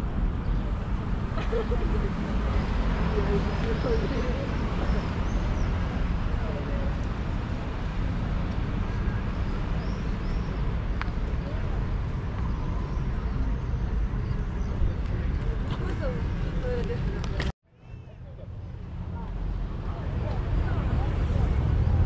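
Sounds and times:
road traffic rumble: 0:00.0 - 0:22.0
voices of passers-by: 0:00.0 - 0:22.0.

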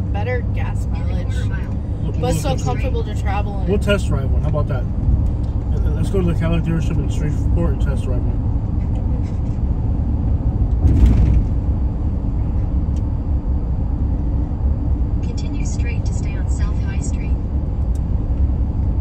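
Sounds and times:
road and engine rumble in cabin: 0:00.0 - 0:19.0
truck bump: 0:10.8 - 0:11.8.

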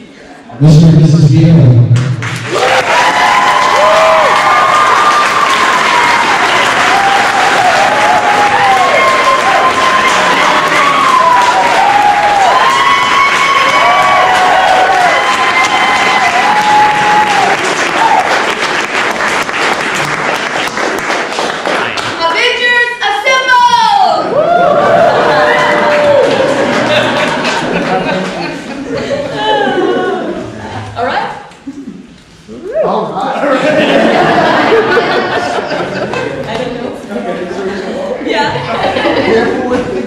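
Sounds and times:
crowd applauding and cheering: 0:01.9 - 0:22.2, 0:24.2 - 0:28.7
shouted whoops: 0:02.5 - 0:18.3, 0:24.0 - 0:26.6.

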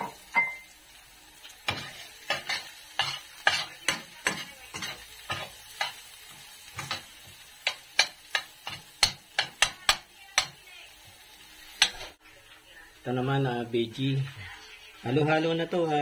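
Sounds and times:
faint sizzle: 0:00.0 - 0:16.0
spoon scraping frying pan: 0:01.5 - 0:10.7, 0:11.5 - 0:12.2.

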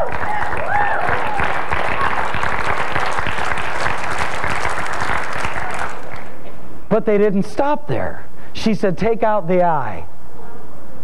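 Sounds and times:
congregation applauding: 0:00.0 - 0:06.4.

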